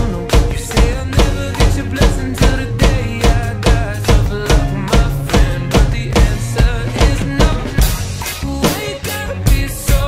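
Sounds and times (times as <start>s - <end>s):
drum kit playing a groove: 0.0s - 10.0s
pop backing track: 0.0s - 10.0s.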